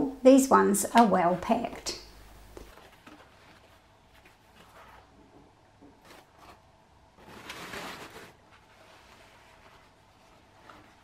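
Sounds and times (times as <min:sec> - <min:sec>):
foam wrap and cardboard rustling: 0:02.6 - 0:05.2, 0:06.0 - 0:11.0.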